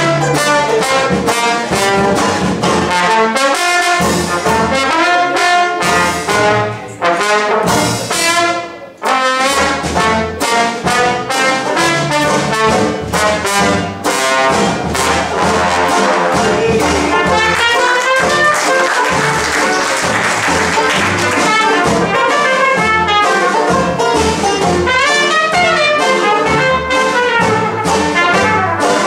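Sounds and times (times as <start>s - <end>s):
banjo: 0.0s - 29.0s
double bass: 0.0s - 29.0s
drums: 0.0s - 29.0s
jazz band playing: 0.0s - 29.0s
trombone: 0.0s - 29.0s
trumpet: 0.0s - 29.0s.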